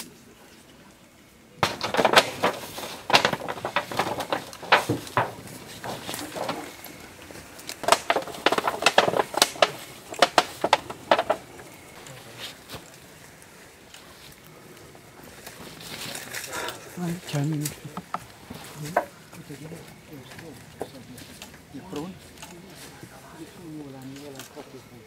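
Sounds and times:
wood and metal debris clattering: 1.6 - 12.7.

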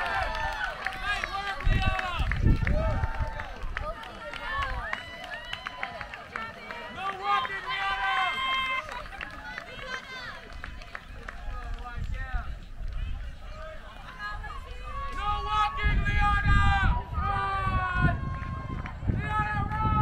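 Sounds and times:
spectators yelling and cheering: 0.0 - 20.0.

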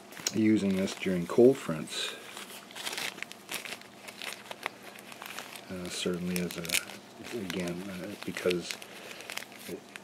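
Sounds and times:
fingers handling fibres crackling: 0.0 - 10.0.

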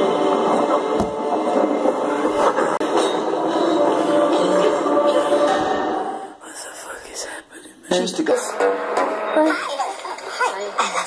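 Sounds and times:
hushed whispering speech: 6.4 - 8.0.

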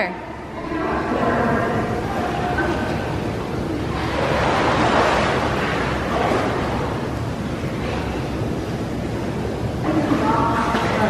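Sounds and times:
pool water splashing and lapping: 0.1 - 11.0.

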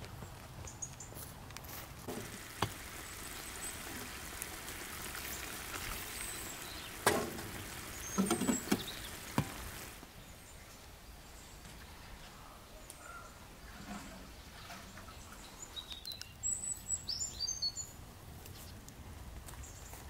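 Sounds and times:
water poured into metal pan: 2.1 - 10.0.

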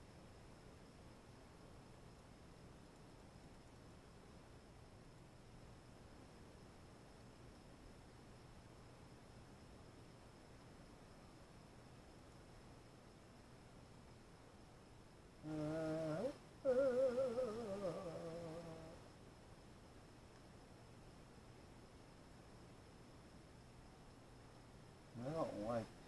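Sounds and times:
man humming: 15.4 - 19.0.

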